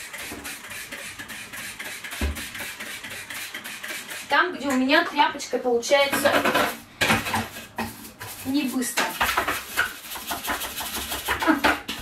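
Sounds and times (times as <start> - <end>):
stiff brush scrubbing a steel sink: 0.0 - 12.0.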